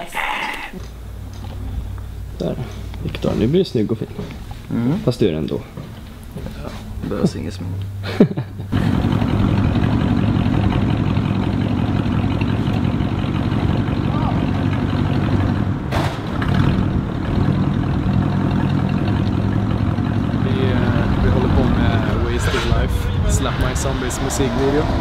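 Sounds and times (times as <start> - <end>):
car engine low rumble: 0.8 - 25.0.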